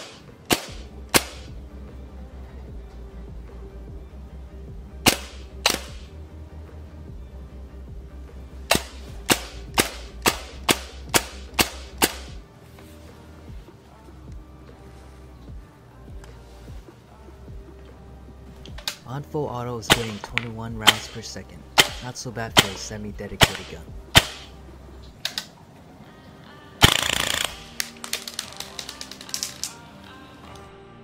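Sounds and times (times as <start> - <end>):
airsoft gun shots cracking: 0.0 - 1.5, 5.0 - 6.1, 8.7 - 12.4, 19.9 - 24.5, 26.8 - 29.4
background music with low beat: 0.0 - 31.0.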